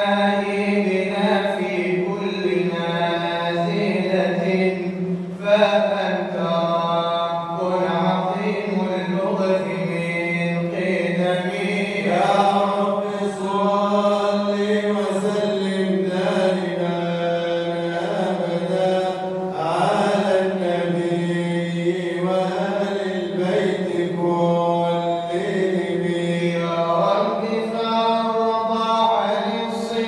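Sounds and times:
man chanting devotional poem: 0.0s - 30.0s.

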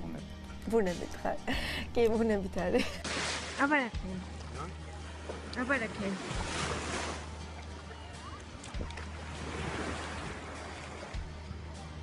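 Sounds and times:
wind: 2.9s - 12.0s.

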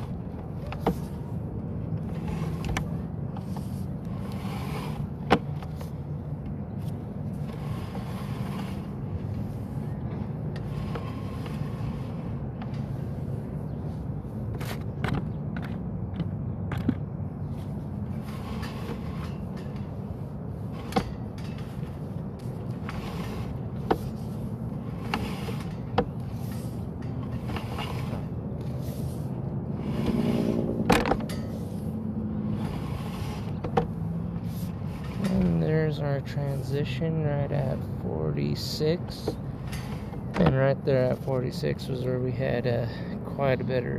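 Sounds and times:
low engine hum: 0.0s - 43.9s.

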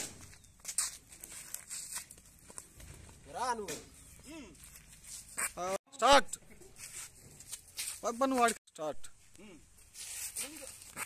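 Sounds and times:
feet scuffling on dirt: 0.0s - 3.2s, 6.7s - 8.6s, 9.8s - 11.0s.

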